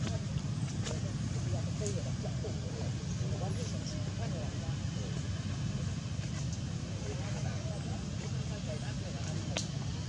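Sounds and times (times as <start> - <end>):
faint distant voices: 0.0 - 10.0
low outdoor rumble: 0.0 - 10.0.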